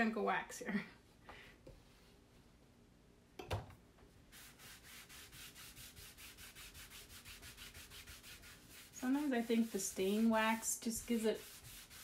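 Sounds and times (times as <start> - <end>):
hand rubbing wax on wood: 4.3 - 12.0.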